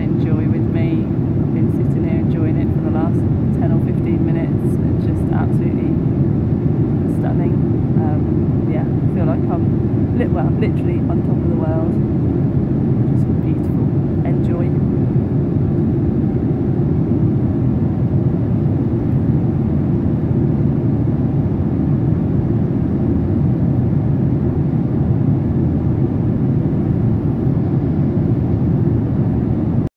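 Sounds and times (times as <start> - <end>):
airliner cabin drone: 0.0 - 29.9.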